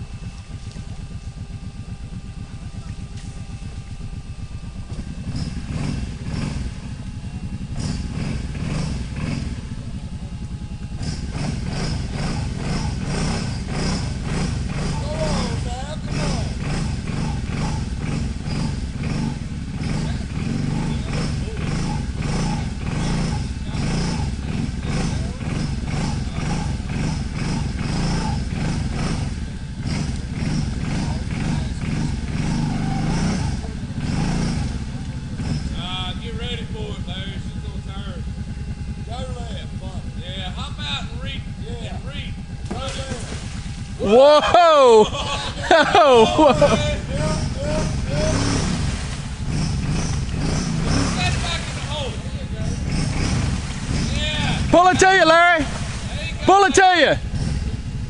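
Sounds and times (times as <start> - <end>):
atv engine revving: 0.0 - 58.0.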